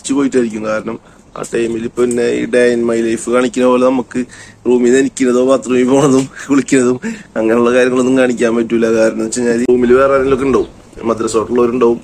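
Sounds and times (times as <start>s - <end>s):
man talking: 0.0s - 12.0s.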